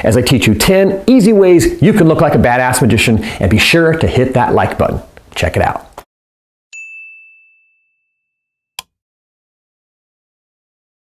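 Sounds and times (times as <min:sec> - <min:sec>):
bell-like chime ding: 0:06.7 - 0:08.7.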